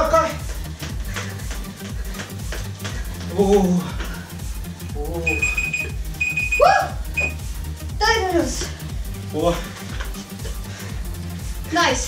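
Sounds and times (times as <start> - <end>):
electronic music: 5.0 - 7.5
workout timer beeping: 5.2 - 7.4.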